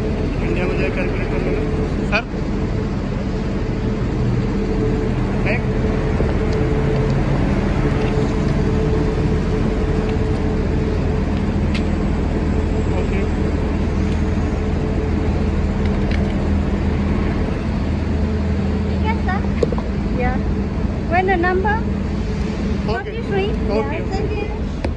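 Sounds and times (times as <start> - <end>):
bus engine idling: 0.0 - 24.9.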